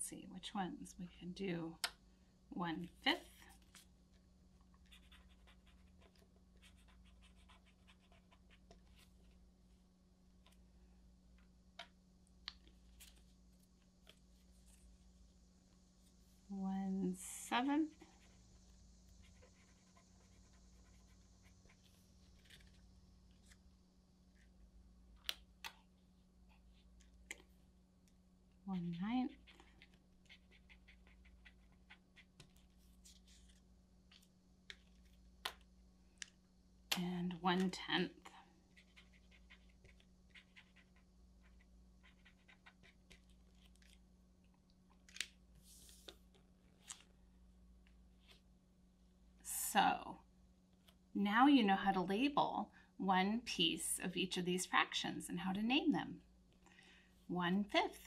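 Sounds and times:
pen scratching on paper: 0:04.9 - 0:09.1, 0:17.6 - 0:22.8, 0:28.8 - 0:33.6, 0:38.7 - 0:43.3.

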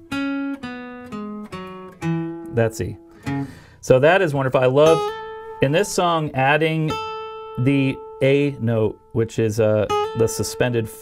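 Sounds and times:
acoustic guitar notes: 0:00.0 - 0:11.0.

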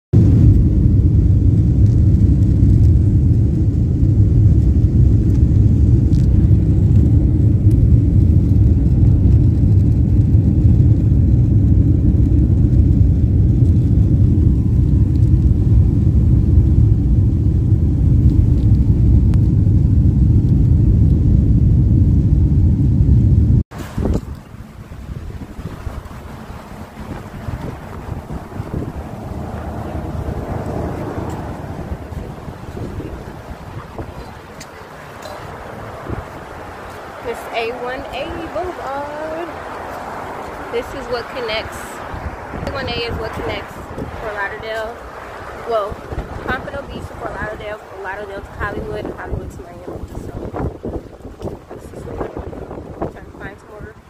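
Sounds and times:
jet engine cabin rumble: 0:00.1 - 0:54.0
wind on microphone: 0:00.1 - 0:54.0.

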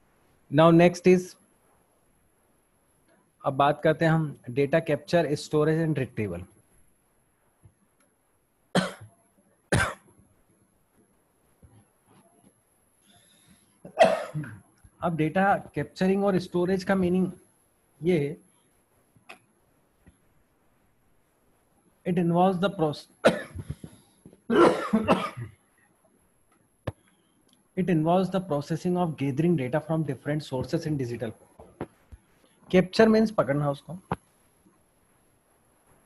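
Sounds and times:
man coughing: 0:08.8 - 0:09.0, 0:09.7 - 0:10.0, 0:13.9 - 0:14.6, 0:23.2 - 0:23.9, 0:24.5 - 0:25.5.

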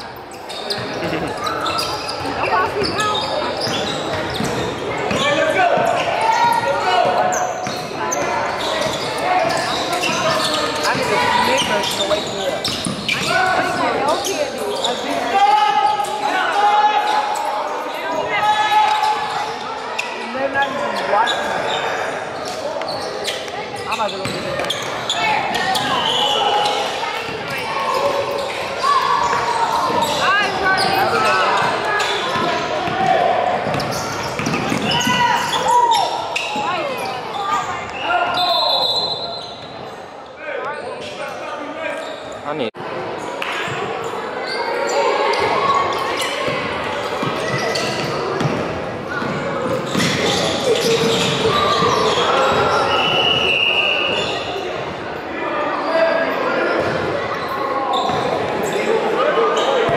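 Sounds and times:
people calling out and talking: 0:00.0 - 0:59.9.

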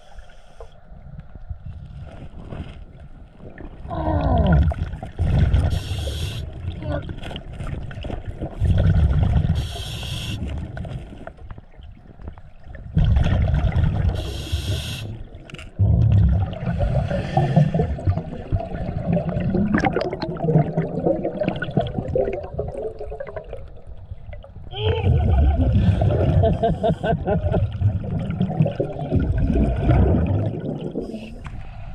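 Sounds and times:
regulator inhale hiss: 0:00.0 - 0:00.8, 0:05.7 - 0:06.5, 0:09.6 - 0:10.5, 0:14.2 - 0:15.2
exhaled bubbles gurgling: 0:03.4 - 0:31.4.

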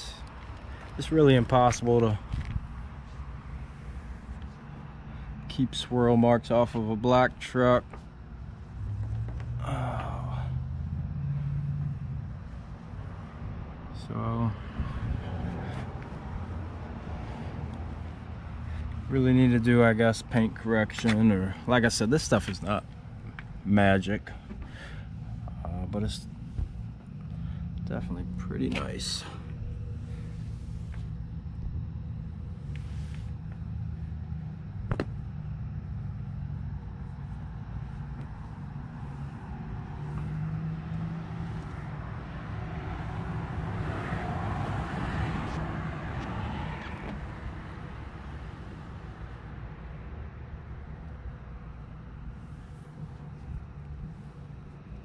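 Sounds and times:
low mechanical rumble with hum: 0:00.0 - 0:55.0
low motor drone: 0:00.0 - 0:55.0.

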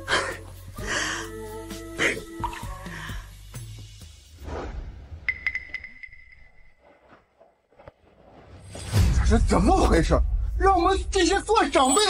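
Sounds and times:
high ringing chime tone: 0:05.3 - 0:06.8.

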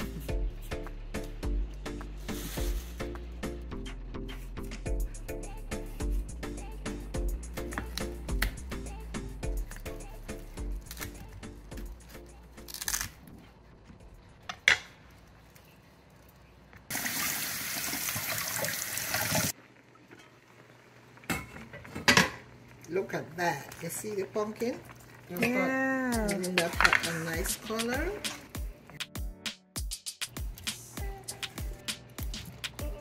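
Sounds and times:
water running: 0:16.9 - 0:21.3, 0:22.7 - 0:28.6
dance music with bass beat: 0:27.4 - 0:33.0.

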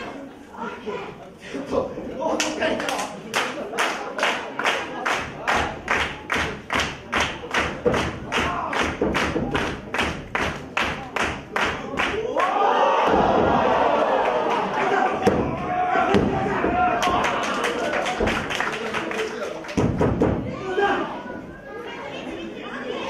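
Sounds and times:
crowd shouting: 0:11.8 - 0:18.3.

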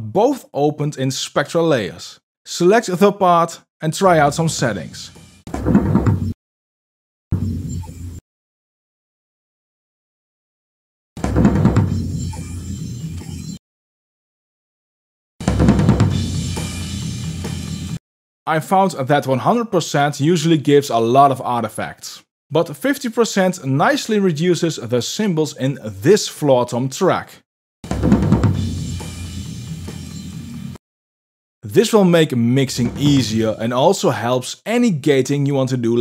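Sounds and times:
floor tom drum hits: 0:15.4 - 0:16.9, 0:27.9 - 0:29.2, 0:32.8 - 0:33.4.

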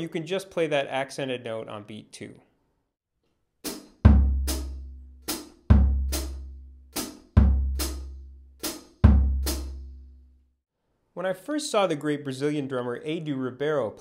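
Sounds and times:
bass drum booms: 0:04.0 - 0:05.0, 0:05.7 - 0:08.3, 0:09.0 - 0:10.0.

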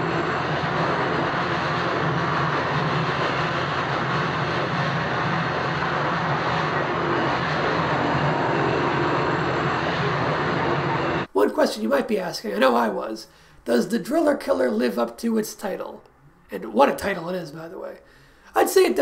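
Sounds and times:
steady roaring noise: 0:00.0 - 0:11.3
low hum: 0:00.0 - 0:11.6.

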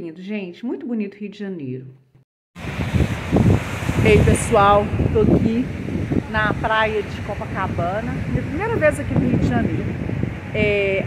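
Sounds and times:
sea surf: 0:02.6 - 0:11.0
wind buffeting microphone: 0:02.6 - 0:11.0.

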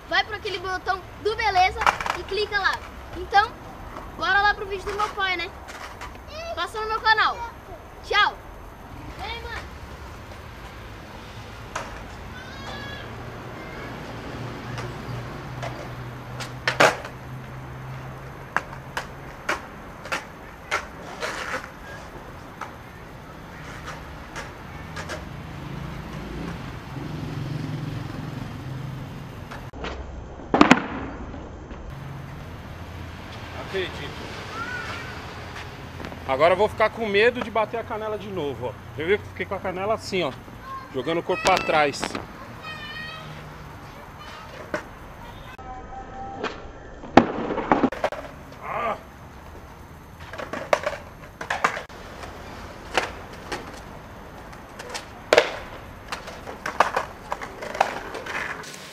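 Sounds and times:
skateboard wheels rolling on concrete: 0:00.0 - 0:45.6, 0:46.4 - 0:58.9
skateboard clacking on pavement: 0:00.3 - 0:07.1, 0:11.6 - 0:27.2, 0:29.4 - 0:29.7, 0:34.8 - 0:37.7, 0:40.4 - 0:43.2, 0:43.8 - 0:45.5, 0:47.2 - 0:48.6, 0:49.3 - 0:58.8
feet landing on pavement: 0:52.9 - 0:58.6.

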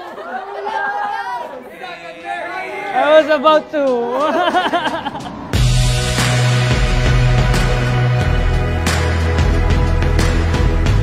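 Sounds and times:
people chattering: 0:00.0 - 0:05.3.

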